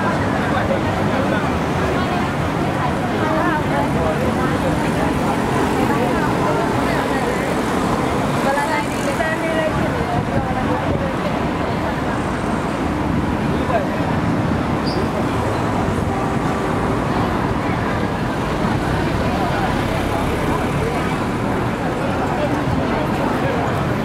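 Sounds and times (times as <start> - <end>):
crowd chatter: 0.0 - 24.0
road traffic passing: 0.0 - 24.0.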